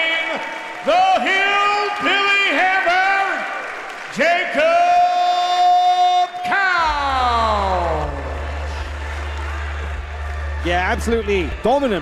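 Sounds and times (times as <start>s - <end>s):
announcer's amplified voice: 0.0s - 8.4s, 10.6s - 12.0s.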